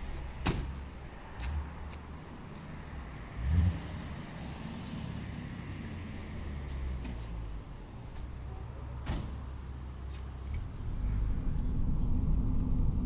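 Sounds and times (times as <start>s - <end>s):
low vehicle rumble: 0.0s - 13.0s.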